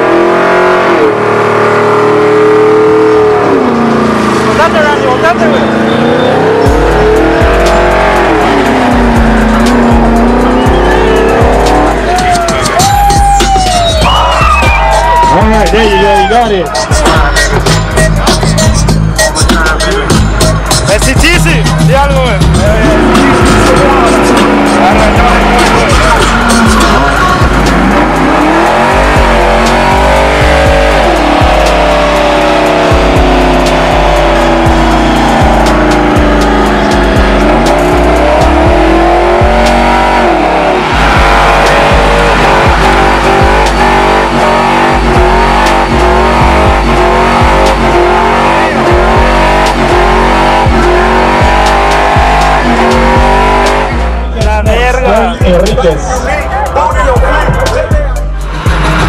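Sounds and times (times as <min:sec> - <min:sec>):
music with heavy bass beat: 0:00.0 - 0:59.0
truck engine revving: 0:00.0 - 0:59.0
tyres spinning and squealing: 0:01.5 - 0:21.7, 0:22.4 - 0:54.4.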